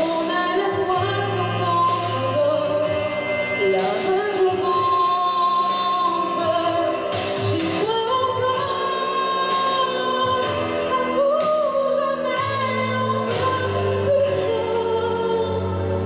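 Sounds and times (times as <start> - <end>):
instrumental accompaniment: 0.0 - 16.0
woman singing into microphone: 0.0 - 16.0.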